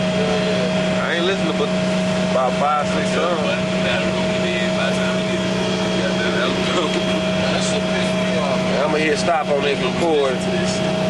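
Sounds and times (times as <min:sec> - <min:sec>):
bus engine hum: 0:00.0 - 0:11.0
steady whine: 0:00.0 - 0:11.0.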